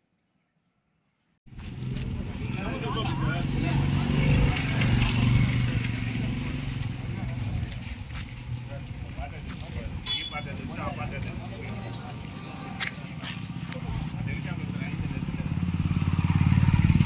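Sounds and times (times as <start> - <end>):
men's indistinct voices: 2.1 - 15.9.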